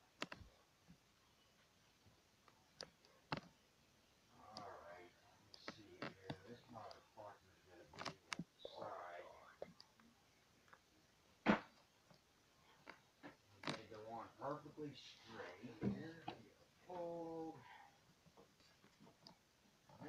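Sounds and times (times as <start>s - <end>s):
person whispering: 4.4s - 9.9s.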